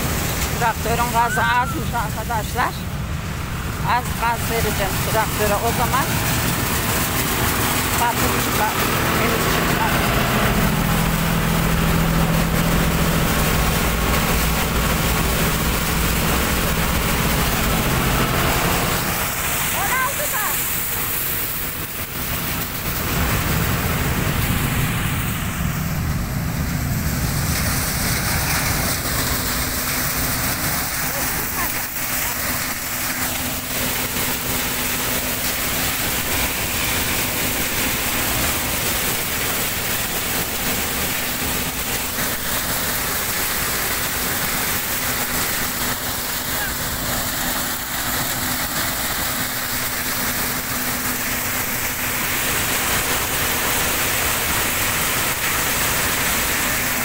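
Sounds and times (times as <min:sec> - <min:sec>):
threshing machine running: 0:00.0 - 0:57.0.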